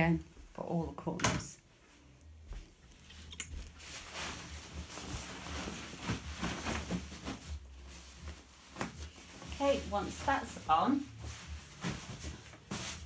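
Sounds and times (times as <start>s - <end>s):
fabric rustling and brushing: 1.8s - 13.0s.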